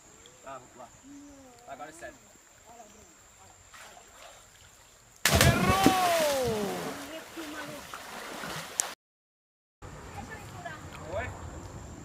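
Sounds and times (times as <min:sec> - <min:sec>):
person yelling falling in pitch: 0:05.4 - 0:07.0.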